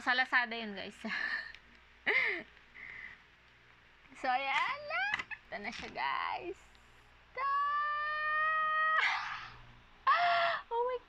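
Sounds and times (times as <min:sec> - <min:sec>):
woman squealing: 0:07.4 - 0:10.8.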